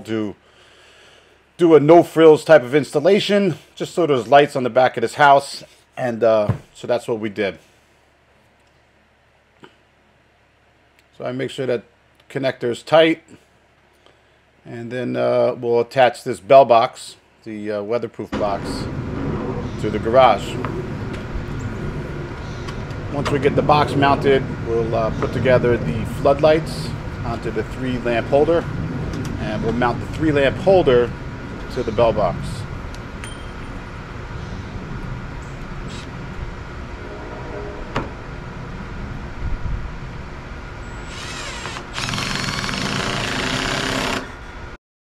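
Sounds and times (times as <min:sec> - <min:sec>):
low rumble of outdoor background: 0:00.0 - 0:44.8
steady background hum: 0:00.0 - 0:44.8
cordless drill driving screws: 0:41.0 - 0:44.4.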